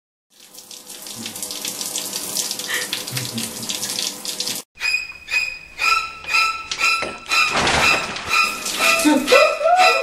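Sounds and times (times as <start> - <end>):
shower spray hissing on tiles: 0.4 - 4.6.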